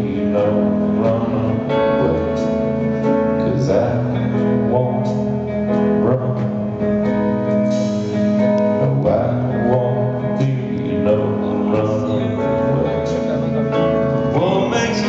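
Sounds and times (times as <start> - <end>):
live rock band playing: 0.0 - 15.0.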